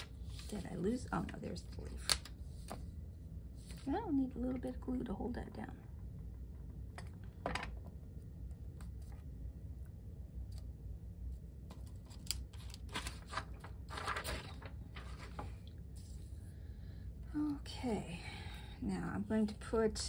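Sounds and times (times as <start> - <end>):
low room hum: 0.0 - 20.0
paper rustling and tapping: 1.2 - 2.8, 11.7 - 15.6.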